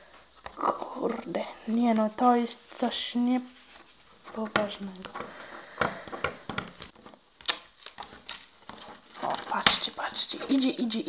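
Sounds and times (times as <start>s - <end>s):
sticky tape peeling crackles: 6.6s - 11.0s.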